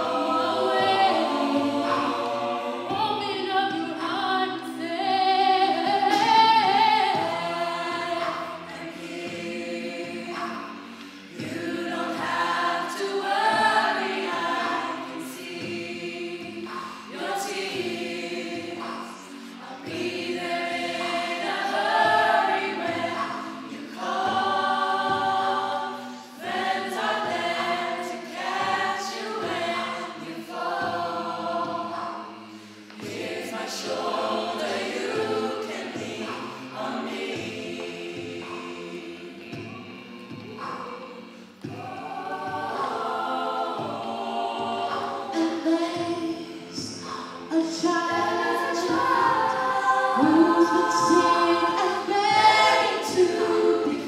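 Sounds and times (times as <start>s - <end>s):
a cappella group singing: 0.0s - 54.0s.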